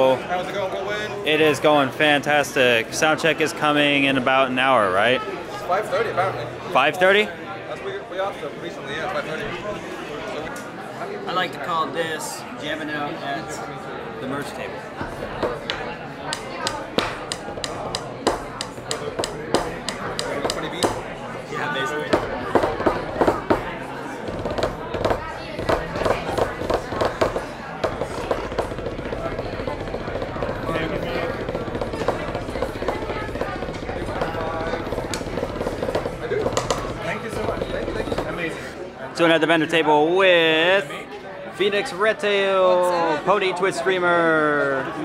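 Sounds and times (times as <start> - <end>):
crowd chatter: 0.0 - 45.0
drumsticks on a practice pad: 15.4 - 21.2, 22.1 - 23.7, 24.3 - 38.5.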